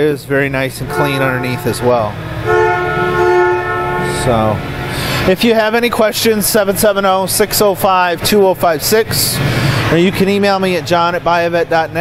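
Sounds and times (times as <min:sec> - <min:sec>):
low background hum: 0:00.0 - 0:12.0
two-note horn tone: 0:00.7 - 0:05.0.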